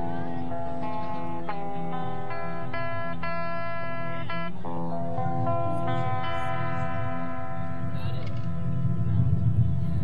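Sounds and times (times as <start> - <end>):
guitar note ringing: 0.0 - 9.6
low bass line: 0.0 - 10.0.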